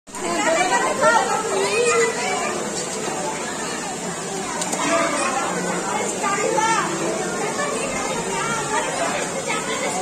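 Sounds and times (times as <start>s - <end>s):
people chattering: 0.1s - 10.0s.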